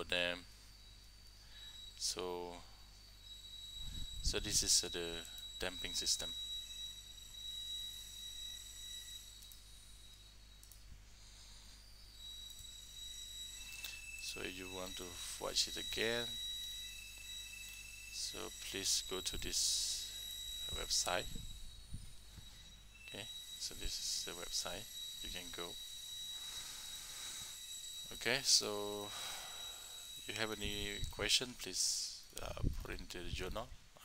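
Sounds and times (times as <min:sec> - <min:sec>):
high-pitched whine: 0:00.0 - 0:34.0
low electrical hum: 0:00.0 - 0:34.0.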